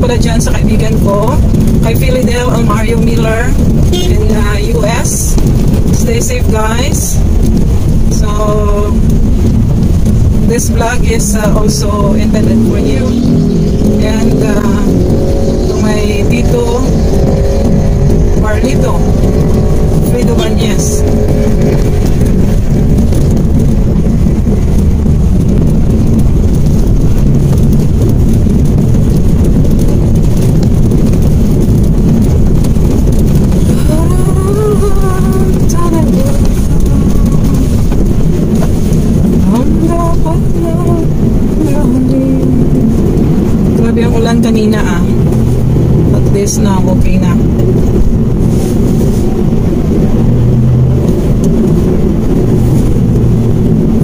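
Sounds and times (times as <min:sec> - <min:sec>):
car engine and road noise: 0:00.0 - 0:54.0.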